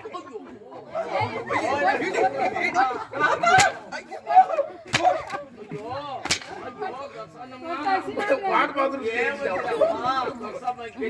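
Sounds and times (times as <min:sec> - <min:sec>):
sharp crack: 0:03.5 - 0:03.8, 0:04.9 - 0:05.4, 0:06.2 - 0:06.8.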